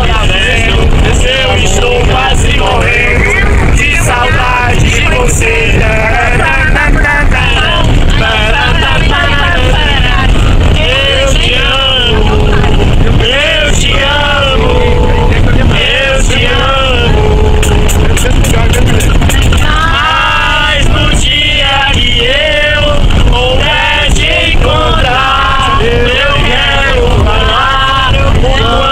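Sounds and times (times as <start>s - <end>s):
bus rumbling: 0.0s - 28.9s
group of people singing: 0.0s - 28.9s.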